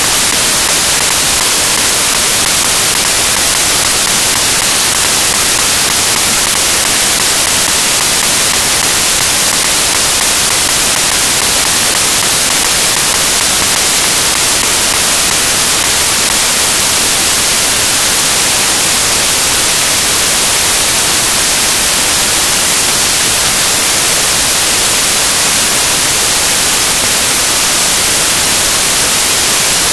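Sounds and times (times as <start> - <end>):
loud static hiss: 0.0 - 29.9.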